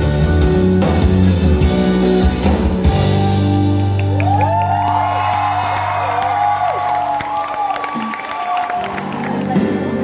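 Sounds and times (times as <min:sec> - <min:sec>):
pop-rock band playing: 0:00.0 - 0:10.0.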